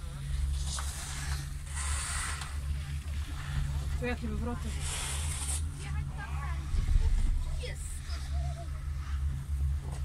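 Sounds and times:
chairlift low rumble: 0.0s - 10.0s.

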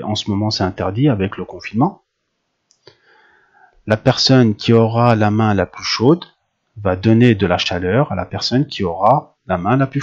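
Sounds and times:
man speaking: 0.0s - 2.0s, 3.9s - 10.0s
mouth click: 2.7s - 3.0s
faint breath: 2.8s - 3.9s.

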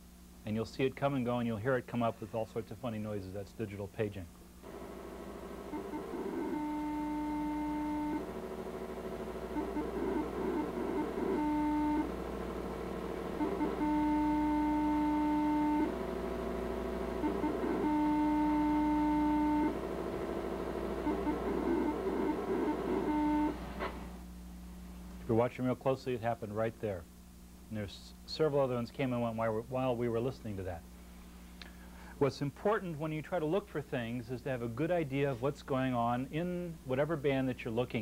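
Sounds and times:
buzzing data tones with warbling: 4.6s - 8.3s, 8.9s - 15.9s, 17.1s - 19.8s, 21.0s - 23.6s
low hum: 4.6s - 25.3s.

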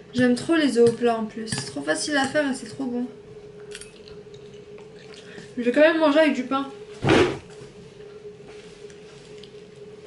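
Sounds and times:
steady low hum: 0.0s - 10.0s
person chewing: 3.6s - 5.4s.

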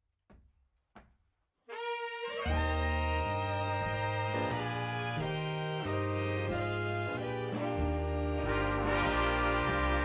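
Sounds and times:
big band horns chord: 1.7s - 10.0s.

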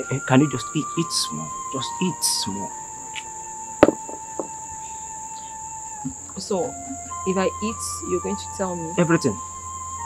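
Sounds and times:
crickets chirring: 0.0s - 10.0s
soft background music note: 0.0s - 10.0s.

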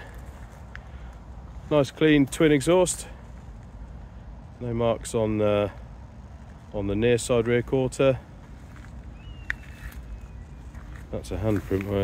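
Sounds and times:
footsteps on gravel: 0.0s - 0.9s, 5.7s - 12.0s.

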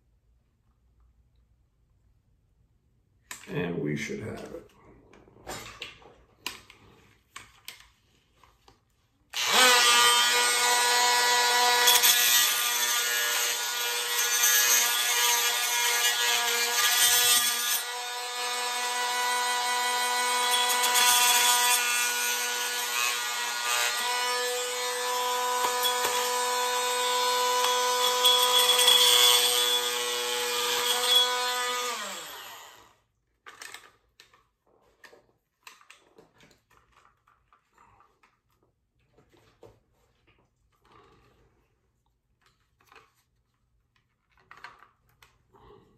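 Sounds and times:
power tool grinding plastic: 9.3s - 32.9s.

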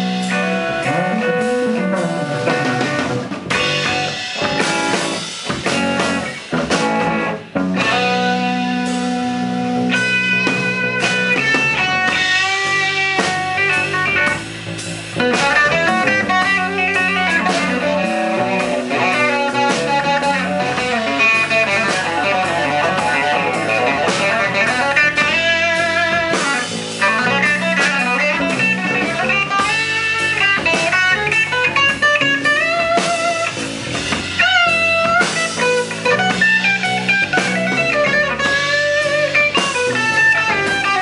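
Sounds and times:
electric guitar solo: 0.0s - 41.0s.

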